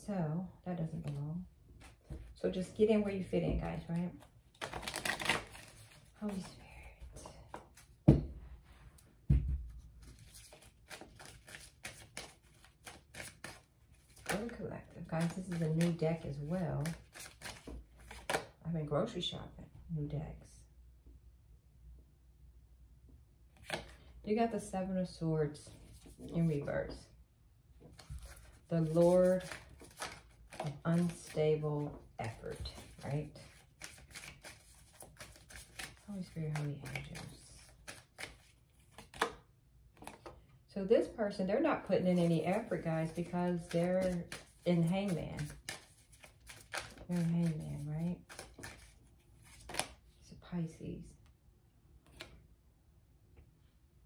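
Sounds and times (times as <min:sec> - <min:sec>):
cards being shuffled: 0:03.7 - 0:06.6, 0:09.9 - 0:18.6, 0:23.6 - 0:24.1, 0:25.7 - 0:26.7, 0:27.8 - 0:40.4, 0:42.0 - 0:50.2, 0:52.0 - 0:52.4.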